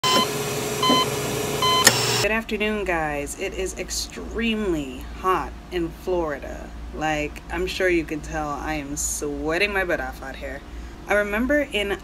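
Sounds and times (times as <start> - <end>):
short electronic beeps: 0.0 - 2.2
steady hum: 0.0 - 12.0.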